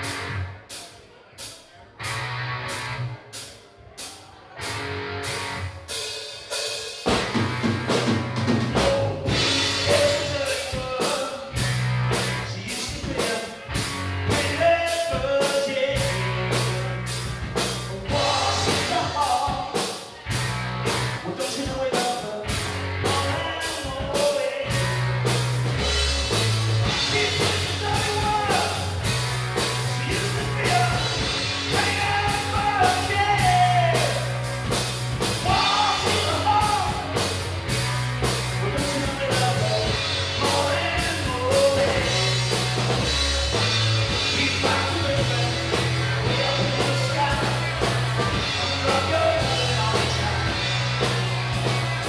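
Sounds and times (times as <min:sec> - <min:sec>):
electric guitars: 0:00.0 - 0:00.5, 0:02.0 - 0:03.4, 0:04.6 - 0:06.1, 0:07.0 - 0:52.0
bass guitar: 0:00.0 - 0:00.8, 0:01.9 - 0:52.0
drum kit beat: 0:01.4 - 0:52.0
man singing: 0:08.5 - 0:11.7, 0:12.3 - 0:20.2, 0:21.2 - 0:25.0, 0:26.8 - 0:29.1, 0:29.8 - 0:34.4, 0:35.4 - 0:37.3, 0:38.5 - 0:50.7.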